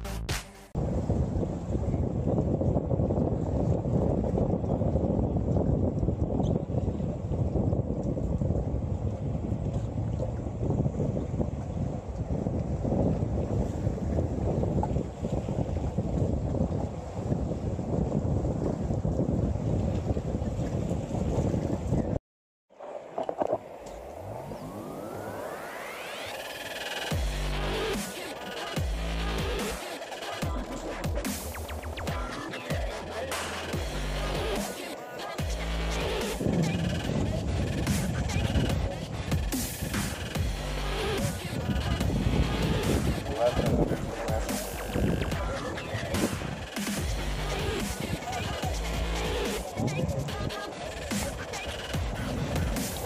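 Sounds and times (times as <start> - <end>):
wind buffeting microphone: 0.8 - 22.2, 35.4 - 53.0
rising multi-tone sound: 22.8 - 30.1.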